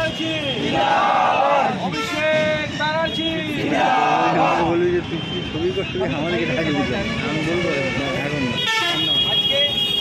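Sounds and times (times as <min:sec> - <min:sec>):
people talking over each other: 0:00.0 - 0:10.0
vehicle horn steady note: 0:06.3 - 0:10.0.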